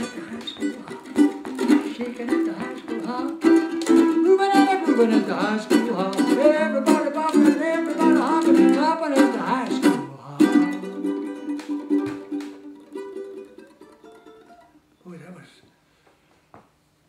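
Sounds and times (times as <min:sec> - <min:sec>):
man singing: 0:00.0 - 0:11.4
ukulele strumming: 0:00.0 - 0:14.9.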